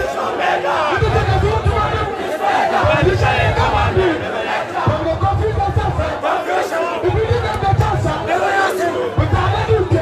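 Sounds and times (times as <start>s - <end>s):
crowd shouting and singing: 0.0s - 10.0s.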